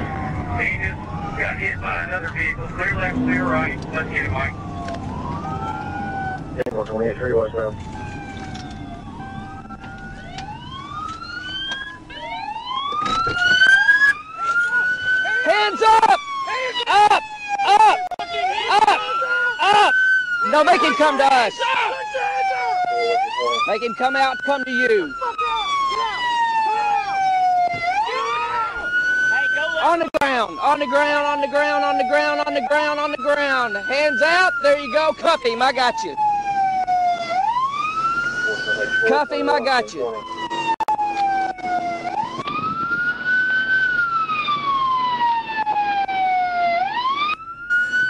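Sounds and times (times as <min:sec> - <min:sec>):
police siren wailing: 0:00.0 - 0:48.0.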